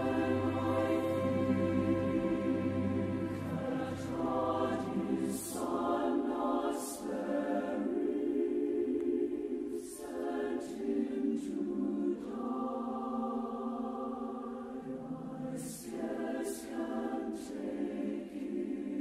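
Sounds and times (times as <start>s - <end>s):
choir singing: 0.0s - 19.0s.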